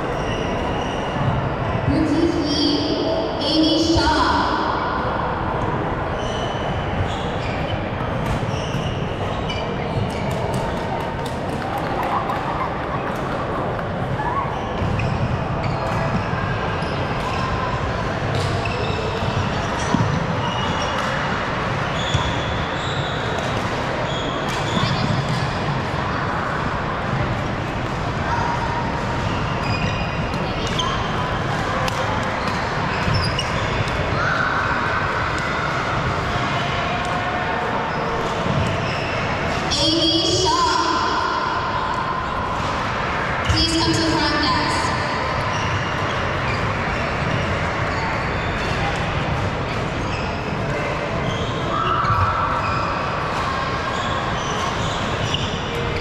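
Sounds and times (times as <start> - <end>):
crowd chatter in hall: 0.0 - 56.0
shoe squeaks on floor: 0.1 - 1.4, 6.2 - 10.6, 14.2 - 17.7, 18.3 - 25.4, 29.2 - 31.3, 32.4 - 34.5, 37.9 - 39.4, 44.9 - 49.0, 49.7 - 53.2, 53.8 - 56.0.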